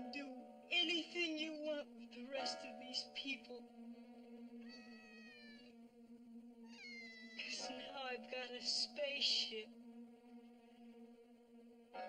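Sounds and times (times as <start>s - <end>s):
faint cat-like meowing: 4.6s - 5.7s, 6.6s - 7.5s.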